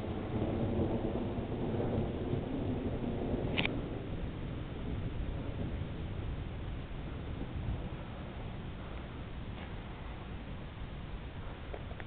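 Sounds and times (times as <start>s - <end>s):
distant thunder rumble: 0.0s - 12.0s.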